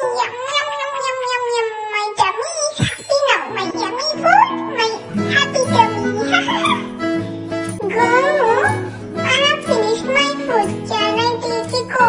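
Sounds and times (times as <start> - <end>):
high cartoon voice wavering note: 2.7 - 4.3.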